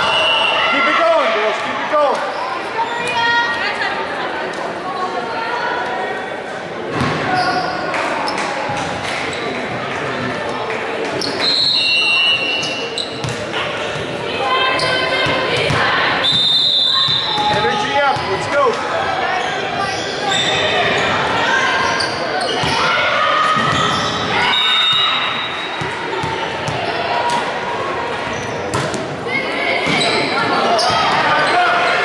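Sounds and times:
volleyball hits: 28.7s - 29.2s.

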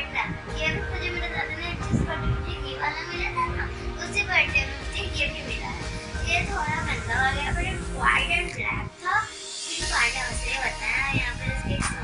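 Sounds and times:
background music: 0.0s - 12.0s
child's voice: 0.0s - 12.0s.

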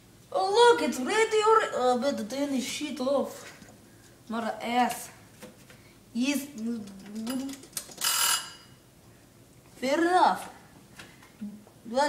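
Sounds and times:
oven timer bell ringing: 8.0s - 8.8s.

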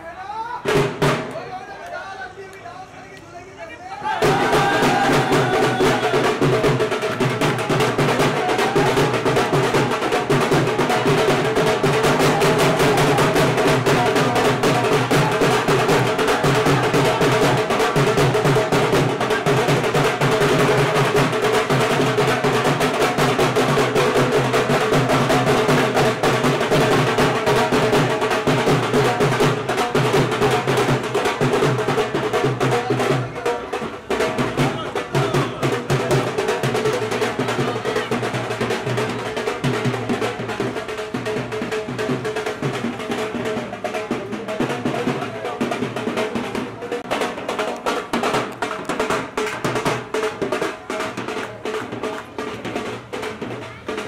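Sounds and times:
crowd voices: 0.0s - 54.0s
drum-heavy band music: 0.6s - 1.5s, 4.0s - 54.0s.

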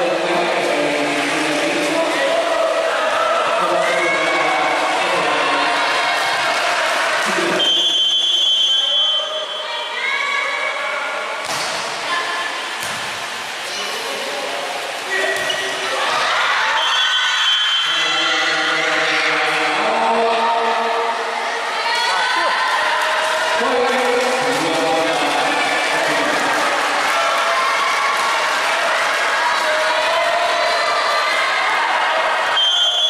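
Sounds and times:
referee's whistle blowing: 7.6s - 9.6s, 16.8s - 18.1s, 32.5s - 33.0s
ball strikes: 11.4s - 12.0s, 12.8s - 13.3s.

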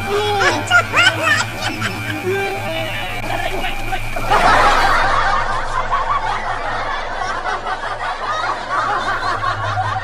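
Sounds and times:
people snickering and chuckling: 0.0s - 10.0s.

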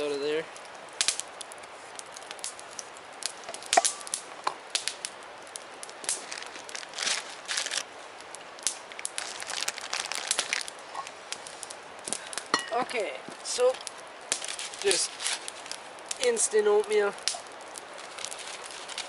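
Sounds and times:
campfire crackling: 0.0s - 19.0s
steady hiss: 0.0s - 19.0s
sharp pops: 1.0s - 5.1s.

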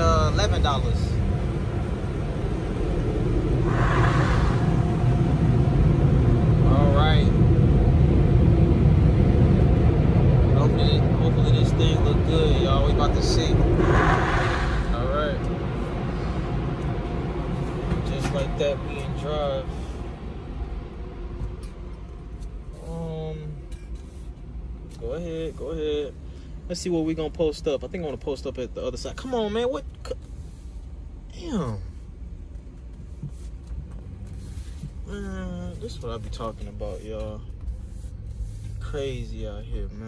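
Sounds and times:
car wash machinery rumbling: 0.0s - 29.2s
rushing sweeps: 0.2s - 21.9s.

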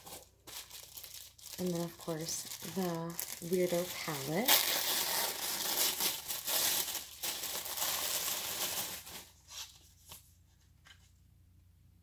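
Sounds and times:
paper wrapping crinkling and tearing: 0.0s - 9.8s.

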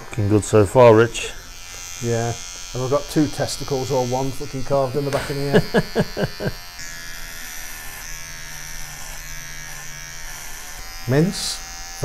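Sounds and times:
electric hair clippers buzzing: 0.0s - 12.0s.

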